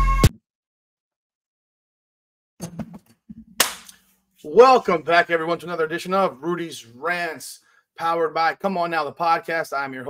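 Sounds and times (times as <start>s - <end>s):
sharp smack: 3.6s - 4.0s.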